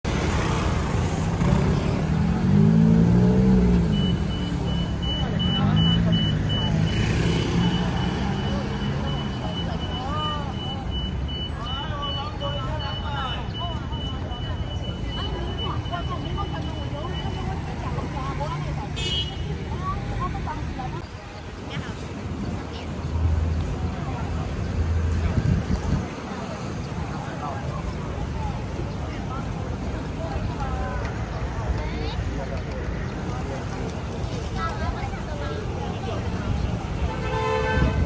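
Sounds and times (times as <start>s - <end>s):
motor scooters and cars passing: 0.1s - 38.0s
people talking: 0.5s - 38.0s.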